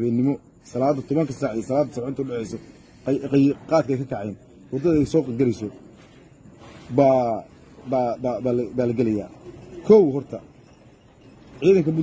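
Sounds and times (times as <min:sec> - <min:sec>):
man speaking: 0:00.0 - 0:05.9, 0:06.8 - 0:10.6, 0:11.5 - 0:12.0.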